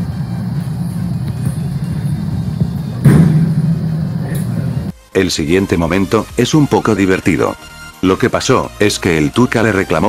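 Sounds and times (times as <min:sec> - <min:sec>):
loud muffled low rumble: 0:00.0 - 0:04.9.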